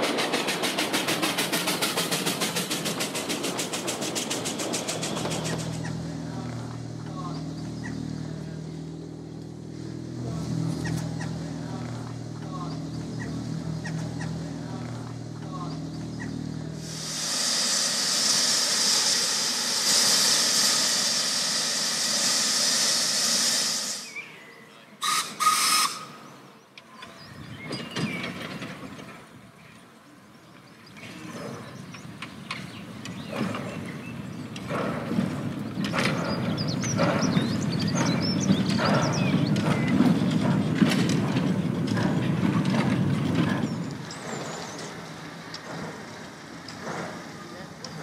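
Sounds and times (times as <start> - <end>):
steam hissing: 16.8 - 24.3, 25.0 - 26.2
sharp steam bursts: 16.8 - 24.4, 25.0 - 26.3.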